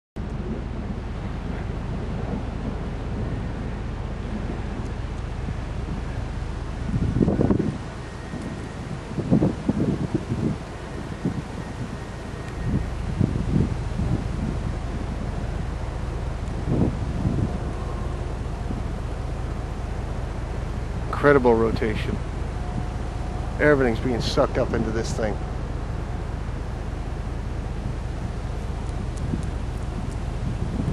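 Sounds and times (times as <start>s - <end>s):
wind buffeting microphone: 0.2s - 30.9s.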